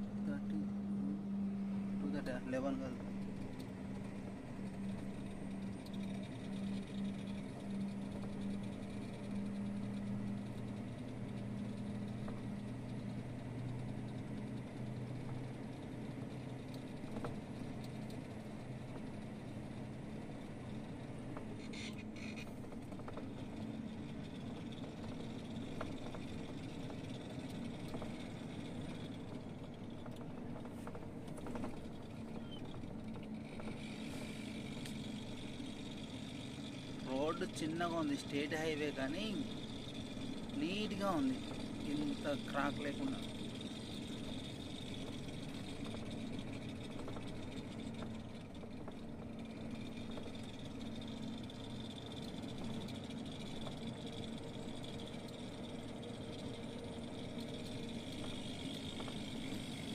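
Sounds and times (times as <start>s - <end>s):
diesel engine droning: 0.0s - 59.9s
road noise: 0.0s - 59.9s.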